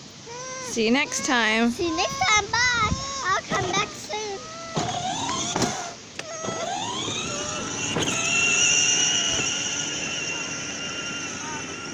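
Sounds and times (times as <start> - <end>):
toy car electric motor whining: 0.3 - 11.9.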